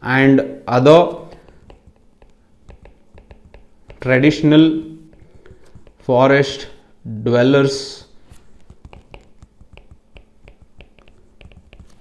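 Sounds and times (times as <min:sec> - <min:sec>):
stylus tapping on tablet screen: 0:01.1 - 0:06.6, 0:08.3 - 0:12.0.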